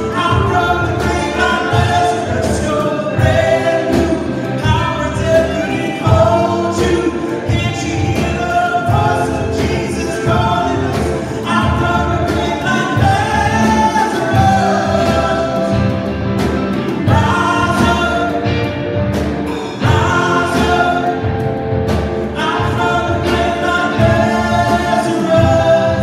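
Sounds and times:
drum kit steady beat: 0.0 - 26.0
guitars playing: 0.0 - 26.0
voices singing together: 0.0 - 26.0.

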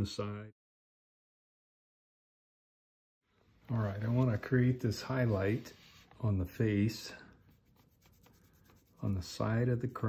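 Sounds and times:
paintbrush scratching on wood: 4.0 - 10.0.

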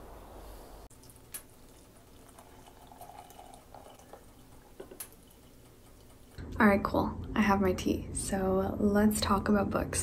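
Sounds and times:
hot water pouring into a mug: 1.0 - 6.1.

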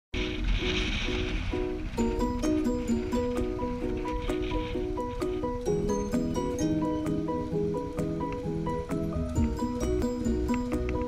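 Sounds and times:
rhythmic background music: 0.2 - 11.0.

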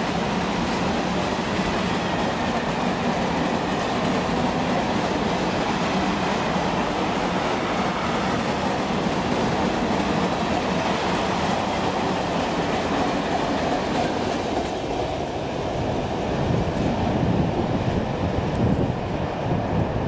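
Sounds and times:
freight train wheels rumbling: 0.0 - 20.0.

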